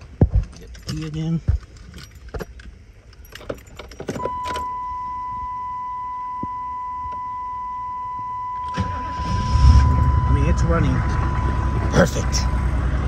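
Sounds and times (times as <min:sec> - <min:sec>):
keys jangling and clicking: 0:00.4 - 0:04.6
high electronic warning tone: 0:04.2 - 0:13.0.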